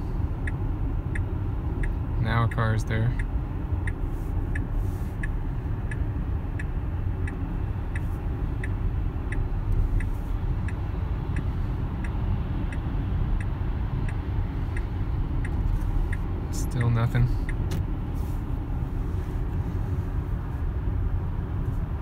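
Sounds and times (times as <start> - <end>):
road and tyre noise: 0.0 - 22.0
car turn signal ticking: 0.2 - 19.6.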